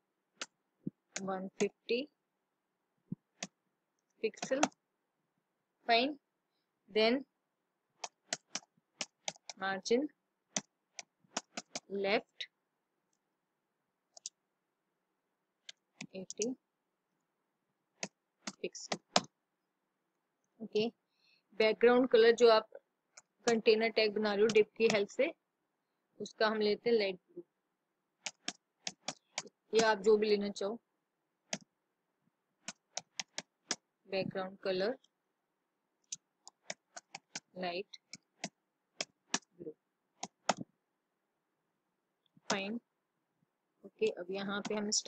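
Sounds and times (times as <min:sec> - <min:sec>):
keyboard keystrokes: 0:08.0 - 0:09.6, 0:10.5 - 0:11.9, 0:28.2 - 0:29.9.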